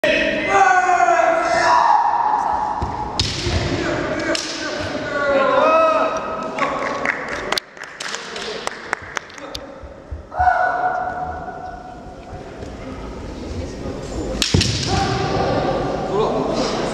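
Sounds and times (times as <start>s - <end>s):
people shouting: 0.2s - 2.8s, 10.3s - 11.6s, 14.7s - 16.0s
bamboo swords clacking: 4.2s - 4.8s, 14.4s - 14.9s.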